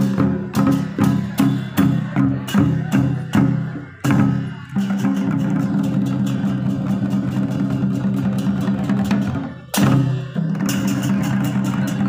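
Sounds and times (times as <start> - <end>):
cymbals: 0.0 - 12.0
hand drums: 0.0 - 12.0.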